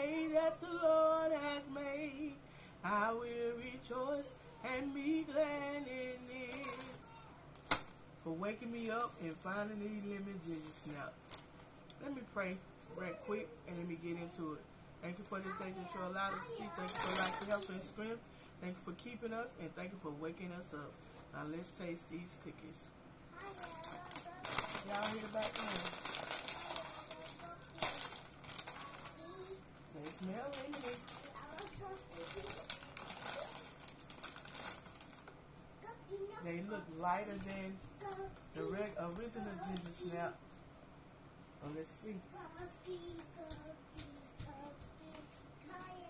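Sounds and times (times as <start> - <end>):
crinkly bag torn open: 6.5 - 7.9, 16.8 - 17.7, 23.4 - 29.4, 30.0 - 35.4.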